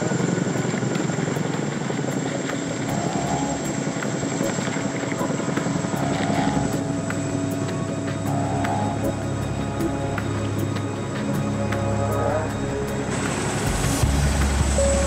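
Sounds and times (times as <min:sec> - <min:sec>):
helicopter rotors chopping: 0:00.0 - 0:15.0
music with held tones: 0:00.0 - 0:15.0.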